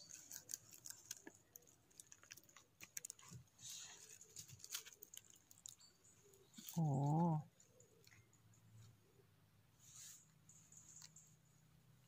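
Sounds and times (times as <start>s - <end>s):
needles and twigs crackling: 0.0s - 8.2s
soft scraping rustle: 9.7s - 11.4s.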